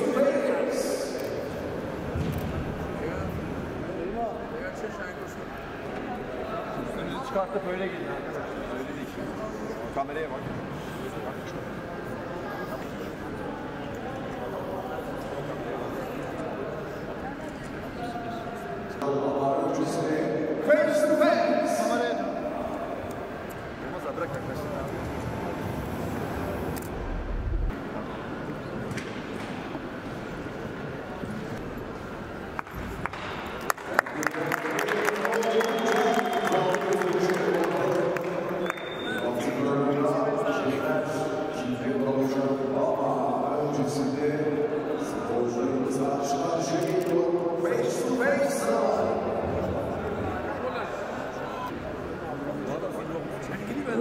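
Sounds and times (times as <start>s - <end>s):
man speaking through microphone: 0.0s - 1.4s, 18.2s - 23.0s, 23.8s - 25.8s, 34.0s - 54.0s
murmur of large hall: 0.0s - 54.0s
short low rumble: 26.7s - 27.7s.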